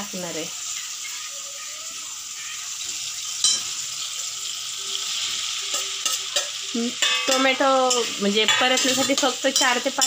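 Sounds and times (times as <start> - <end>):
masala sizzling in hot oil: 0.0 - 10.0.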